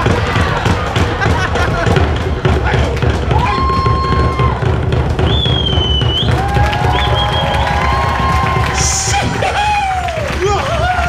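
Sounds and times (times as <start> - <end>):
crowd cheering: 0.0 - 11.0
drums beaten fast: 0.0 - 11.0
whoops and yells: 3.3 - 4.7, 5.6 - 11.0.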